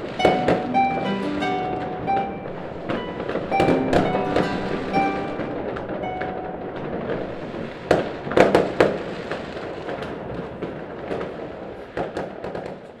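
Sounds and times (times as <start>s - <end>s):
firework pops and crackles: 0.0s - 13.0s
fireworks bangs: 0.0s - 13.0s.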